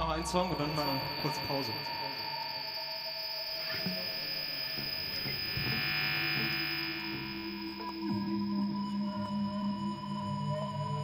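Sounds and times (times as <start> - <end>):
amplified drone of held tones: 0.0 - 11.0
high whine: 0.0 - 11.0.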